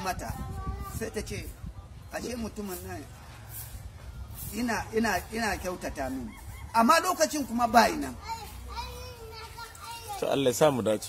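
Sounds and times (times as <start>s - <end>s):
faint children's voices: 0.0s - 4.6s, 7.9s - 11.0s
man speaking: 10.2s - 11.0s.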